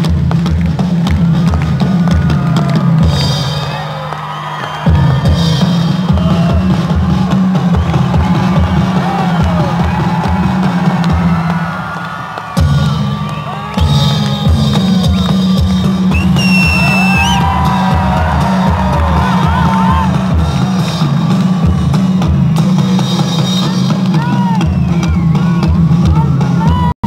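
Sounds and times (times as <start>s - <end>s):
loud music with heavy drum beat: 0.0s - 3.9s, 4.8s - 27.0s
crowd cheering and shouting: 0.0s - 27.0s
high held whistle: 12.4s - 18.6s, 22.3s - 25.7s.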